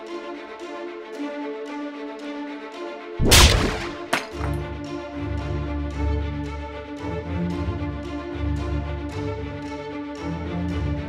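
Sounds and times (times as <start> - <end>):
film score strings: 0.0 - 11.0
sharp snap: 3.2 - 4.5
loud crack-like impact: 3.2 - 4.6.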